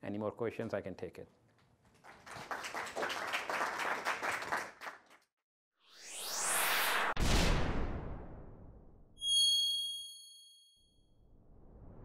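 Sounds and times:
whoosh: 5.8 - 8.9, 11.2 - 12.0
bell-like ding: 9.2 - 11.0.

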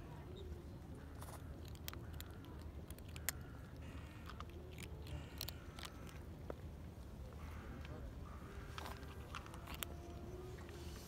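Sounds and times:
kittens crunching dry kibble: 0.0 - 11.0.

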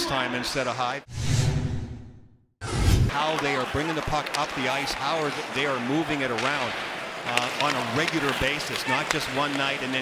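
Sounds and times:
bass-heavy whoosh: 1.1 - 3.1.

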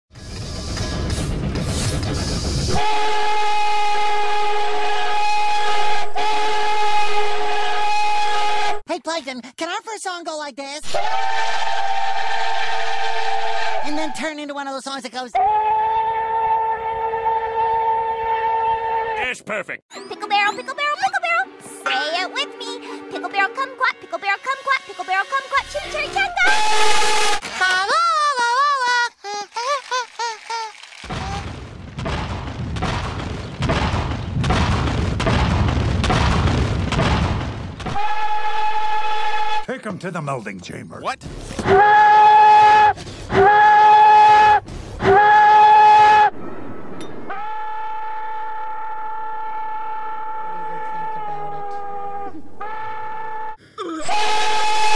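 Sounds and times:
steam locomotive whistle blast: 2.2 - 8.8, 10.9 - 14.2, 15.4 - 19.2, 26.4 - 27.4, 37.9 - 39.7, 41.7 - 46.3, 47.2 - 54.9
loud rumbling noise: 46.2 - 50.7.

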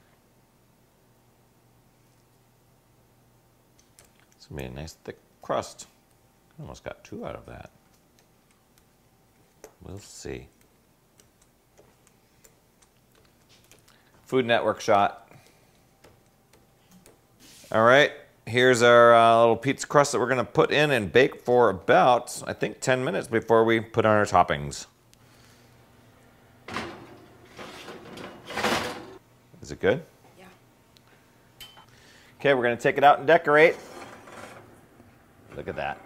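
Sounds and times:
oven door opening: 26.6 - 29.2, 33.6 - 36.0
wire oven rack sliding: 26.7 - 29.2, 33.5 - 36.0.

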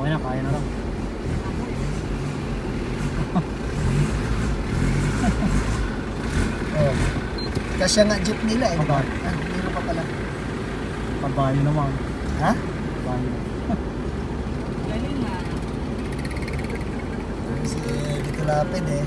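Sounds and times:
people talking: 0.0 - 0.7, 6.7 - 7.0, 7.8 - 10.2, 11.2 - 13.8, 14.8 - 15.7, 16.4 - 19.0
vehicle engine rumble passing: 0.0 - 19.0.

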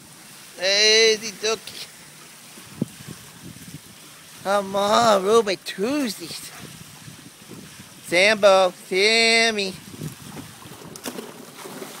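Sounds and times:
water moving in pool: 0.0 - 12.0
wind on microphone: 2.6 - 5.3, 6.2 - 12.0.

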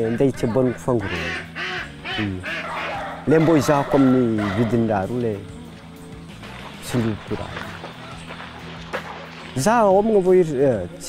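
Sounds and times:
ducks quacking: 0.0 - 5.2
soft background music: 0.0 - 11.0.

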